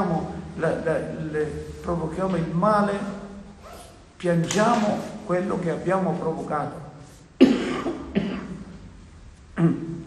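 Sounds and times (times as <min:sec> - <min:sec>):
man coughing: 0:07.4 - 0:08.7.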